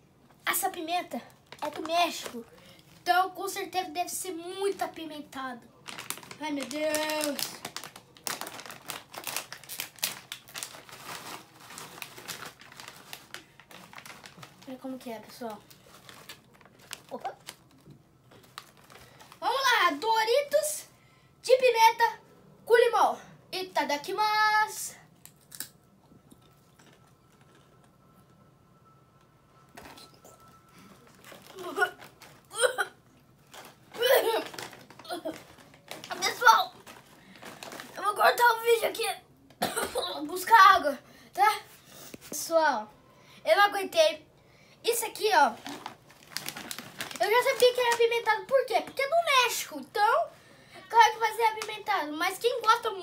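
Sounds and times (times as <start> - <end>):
chip bag crinkling: 1.2 - 3.1, 5.8 - 20.2, 25.2 - 27.8, 29.8 - 38.9, 44.9 - 48.5.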